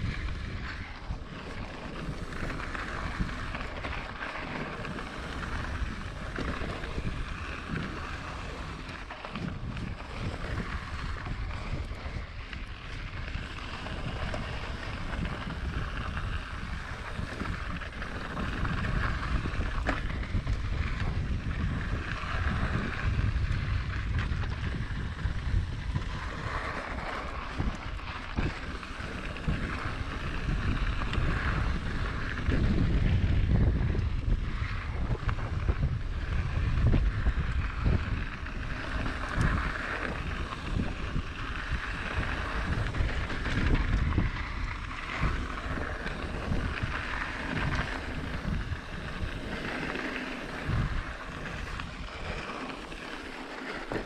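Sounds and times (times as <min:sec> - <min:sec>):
low tyre rumble: 0:00.0 - 0:54.0
wind buffeting microphone: 0:00.0 - 0:54.0.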